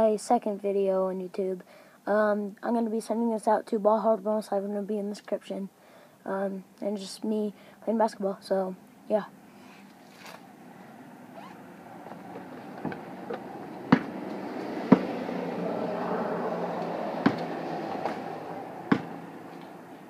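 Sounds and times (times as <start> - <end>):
basketball bouncing: 12.2 - 14.3, 18.9 - 19.2.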